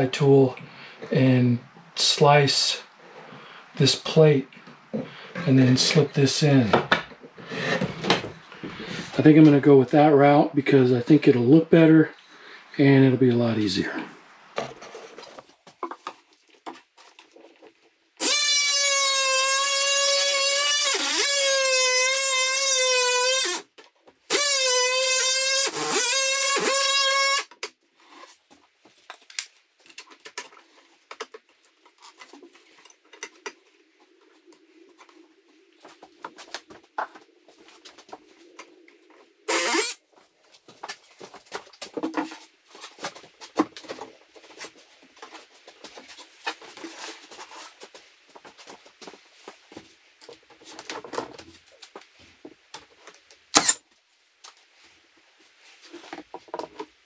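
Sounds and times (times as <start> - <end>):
multi-tool buzzing whine: 18.2 - 23.7, 24.3 - 27.6, 39.5 - 40.0.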